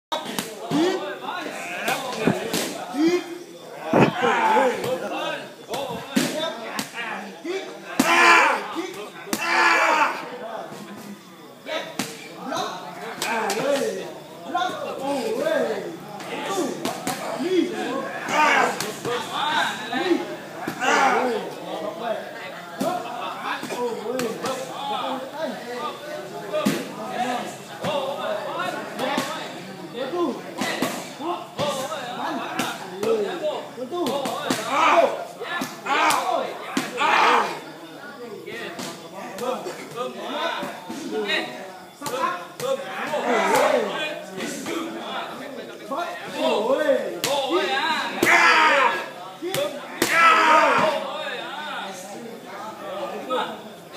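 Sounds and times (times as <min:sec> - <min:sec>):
men's voices: 0:00.1 - 0:53.6.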